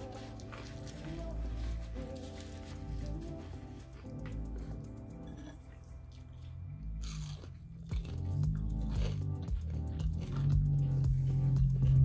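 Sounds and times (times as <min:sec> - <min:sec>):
person biting and chewing food: 0:04.7 - 0:12.0.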